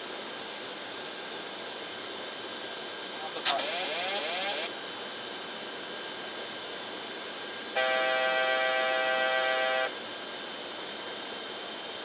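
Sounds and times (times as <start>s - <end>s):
garbled radio transmission: 3.2s - 4.8s
sharp click: 3.4s - 4.0s.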